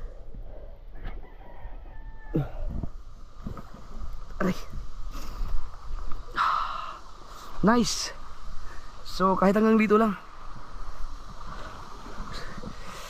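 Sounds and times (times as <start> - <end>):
rooster crowing: 0.9 - 2.8.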